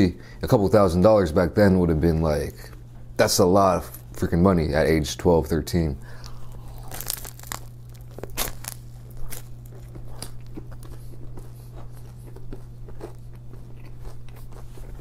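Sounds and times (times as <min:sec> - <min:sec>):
chewing with mouth closed: 0:06.2 - 0:15.0
crunchy bites into bread: 0:06.2 - 0:15.0.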